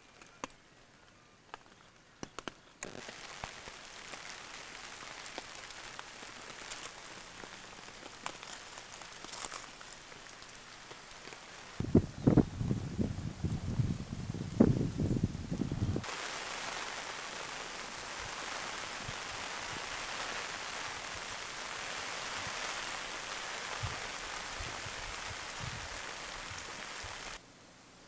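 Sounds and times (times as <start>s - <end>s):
rain falling on a tarp: 0.0s - 27.4s.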